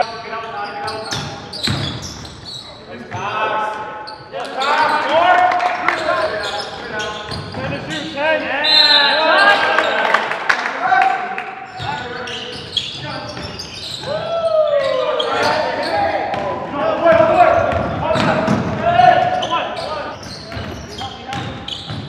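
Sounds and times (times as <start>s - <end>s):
sneakers squeaking: 0.0s - 5.3s, 5.9s - 10.0s, 11.6s - 22.0s
basketball bouncing on wooden floor: 1.1s - 2.2s, 17.1s - 19.3s, 20.5s - 22.0s
players calling out: 4.3s - 21.9s.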